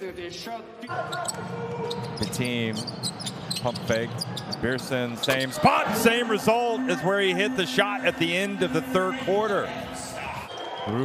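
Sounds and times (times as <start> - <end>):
voices in an arena: 0.0 - 11.0
steady tone: 5.7 - 10.4.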